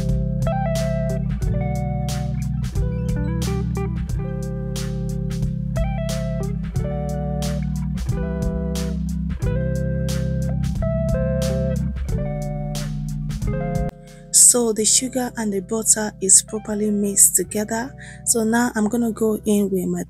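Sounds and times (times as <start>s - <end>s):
guitar and bass music with beat: 0.0s - 20.0s.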